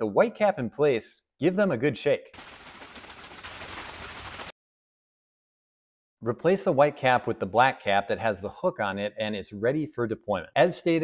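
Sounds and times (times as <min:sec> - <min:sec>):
plastic tubes of water shaken: 0:02.4 - 0:04.6.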